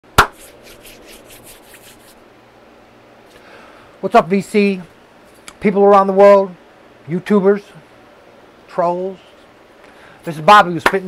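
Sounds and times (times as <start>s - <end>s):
hand clap: 0.2s - 0.8s, 10.8s - 11.0s
hands rubbing together: 0.2s - 2.2s.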